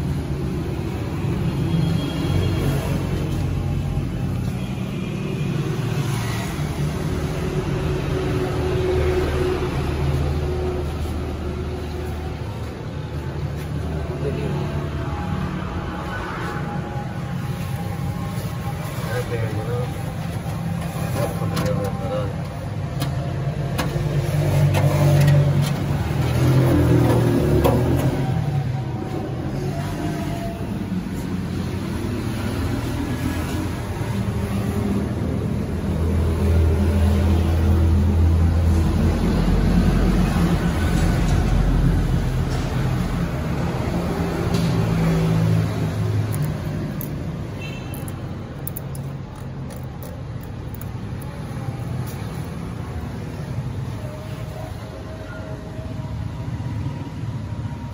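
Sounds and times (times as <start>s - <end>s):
engine rumbling: 6.5s - 53.9s.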